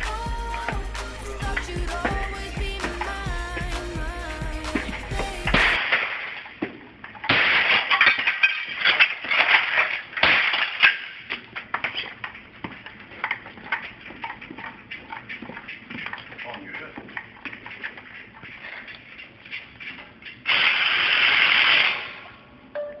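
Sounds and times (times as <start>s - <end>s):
pop music: 0.0s - 5.8s
objects crashing and clattering: 4.8s - 12.3s.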